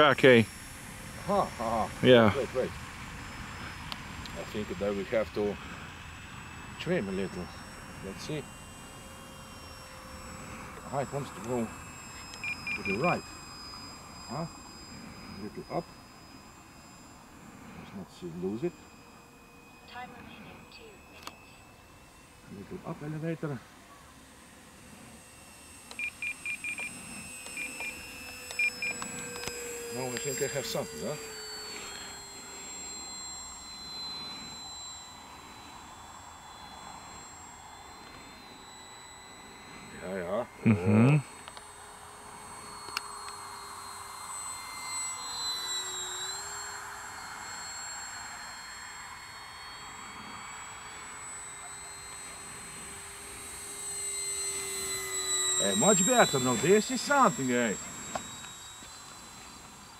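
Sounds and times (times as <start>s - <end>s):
model plane motor whine: 0.0s - 59.9s
short electronic beeps: 10.8s - 13.3s, 25.9s - 32.2s.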